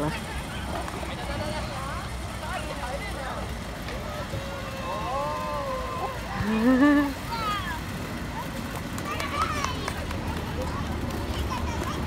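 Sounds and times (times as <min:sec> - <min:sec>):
children and adults chattering: 0:00.0 - 0:12.0
low outdoor rumble: 0:00.0 - 0:12.0.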